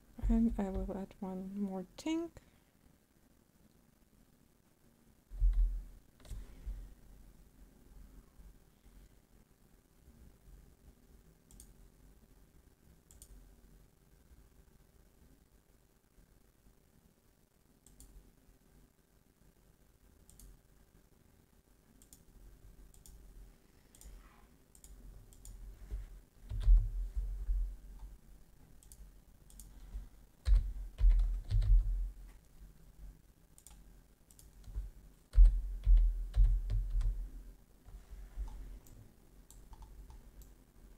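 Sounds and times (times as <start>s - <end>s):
low room hum: 0.0s - 40.9s
computer mouse clicking: 5.4s - 6.8s, 11.5s - 11.8s, 13.1s - 13.4s, 17.8s - 18.2s, 20.3s - 20.6s, 22.0s - 22.3s, 22.9s - 23.2s, 23.9s - 28.2s, 28.8s - 32.5s, 33.5s - 37.2s, 37.9s - 40.6s
keyboard keystrokes: 26.5s - 27.3s, 30.4s - 32.0s, 33.6s - 37.2s.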